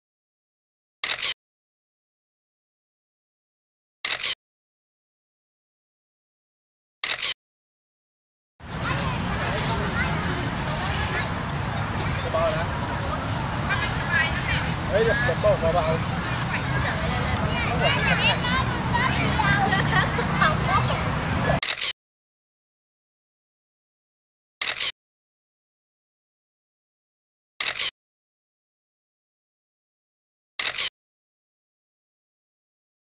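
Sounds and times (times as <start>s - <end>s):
people's voices outdoors: 8.6s - 21.6s.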